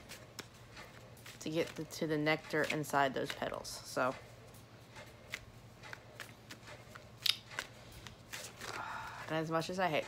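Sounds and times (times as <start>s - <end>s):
cards being shuffled: 0.0s - 3.9s, 4.9s - 8.9s.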